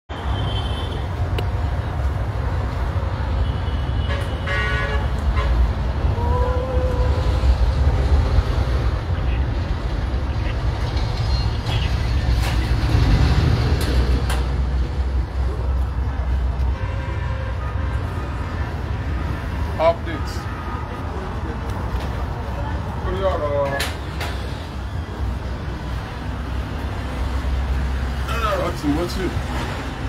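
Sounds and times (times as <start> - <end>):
road traffic rumble: 0.1 - 30.0
vehicle horn toot: 3.5 - 5.6, 16.8 - 18.3.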